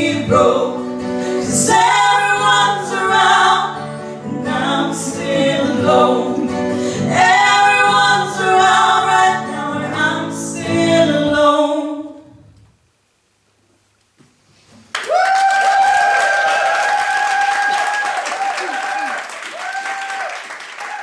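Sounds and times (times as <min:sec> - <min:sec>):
two women singing a duet: 0:00.0 - 0:12.4.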